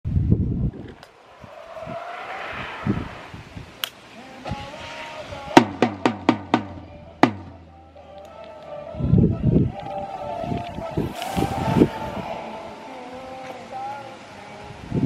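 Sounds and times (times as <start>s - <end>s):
skis hissing down track: 1.1s - 5.6s, 10.9s - 14.0s.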